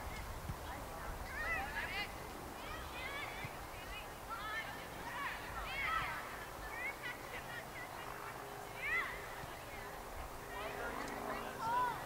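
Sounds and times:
steady outdoor rumble: 0:00.0 - 0:12.0.

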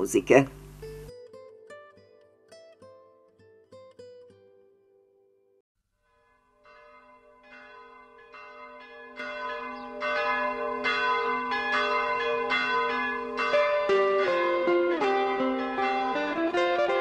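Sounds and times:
church bells ringing: 0:06.1 - 0:17.0.

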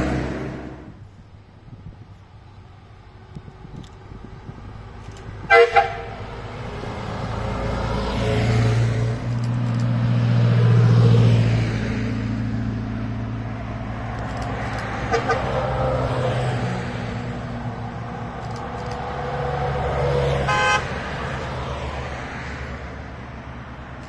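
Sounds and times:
diesel vehicles passing: 0:00.0 - 0:24.0
horn toots: 0:05.4 - 0:06.4, 0:15.1 - 0:15.6, 0:20.4 - 0:21.0.

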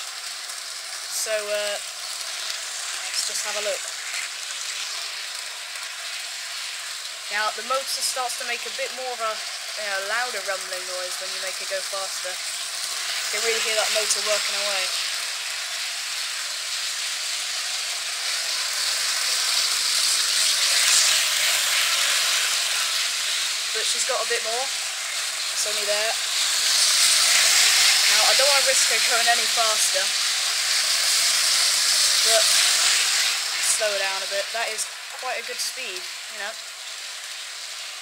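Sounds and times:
model train running on track: 0:00.0 - 0:38.0.

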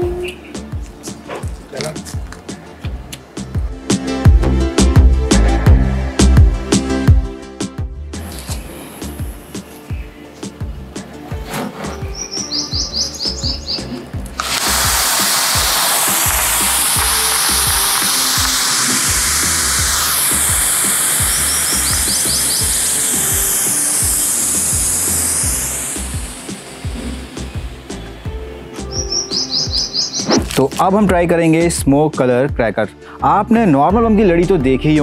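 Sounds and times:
music with steady beat: 0:00.0 - 0:33.0
smoke stick hissing: 0:08.2 - 0:09.6, 0:14.3 - 0:30.8.

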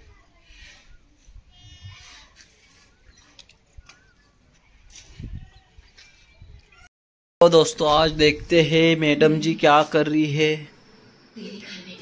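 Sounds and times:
wind rumble on microphone: 0:05.0 - 0:05.6.

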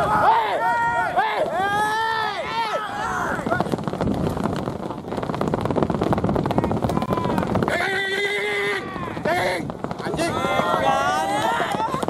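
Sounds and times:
man shouting long call: 0:07.0 - 0:09.7.

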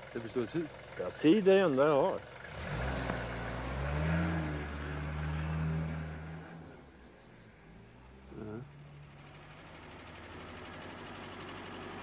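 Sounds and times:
vehicle engine humming: 0:00.0 - 0:12.0.

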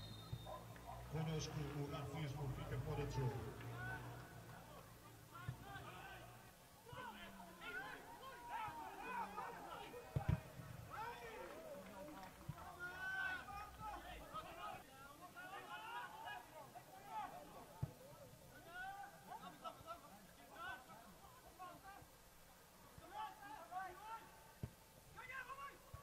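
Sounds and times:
players and crowd shouting: 0:00.0 - 0:17.8, 0:18.6 - 0:19.6, 0:23.0 - 0:24.5, 0:25.2 - 0:26.0
ball kicked with a thud: 0:10.2 - 0:10.5.

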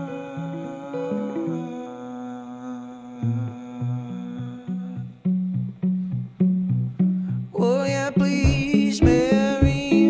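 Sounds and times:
guitar ringing note: 0:00.0 - 0:10.0
low plucked guitar notes: 0:00.0 - 0:10.0.

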